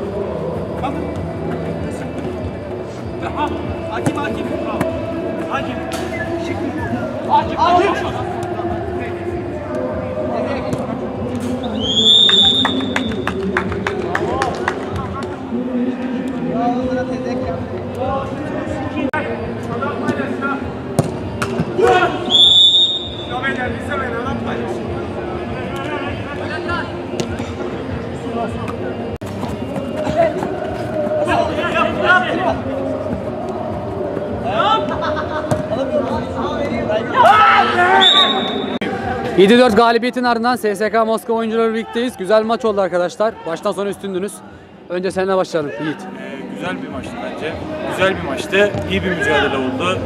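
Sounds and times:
men's voices: 0:00.0 - 0:50.0
music: 0:00.0 - 0:50.0
referee's whistle long blast: 0:11.8 - 0:13.0, 0:22.2 - 0:23.3, 0:37.9 - 0:38.8
people clapping: 0:12.2 - 0:15.3.

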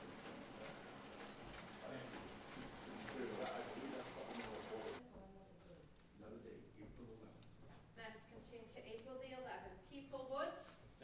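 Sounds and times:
murmuring voices: 0:00.0 - 0:05.8.

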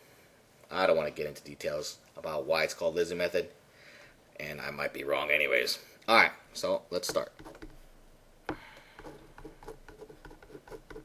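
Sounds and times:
marker pen writing on whiteboard: 0:07.0 - 0:07.8, 0:08.5 - 0:11.0.

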